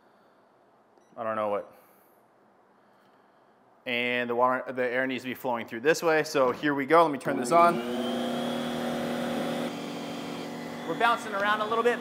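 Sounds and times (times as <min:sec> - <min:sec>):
shop vacuum running: 0:07.1 - 0:12.0.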